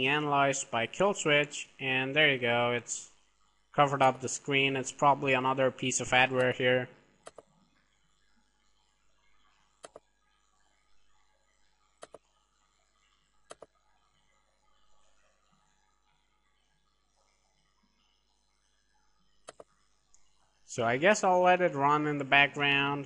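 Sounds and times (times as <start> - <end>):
computer mouse clicks: 7.2 - 7.6, 9.8 - 10.1, 12.0 - 12.3, 13.5 - 13.8, 19.4 - 20.3.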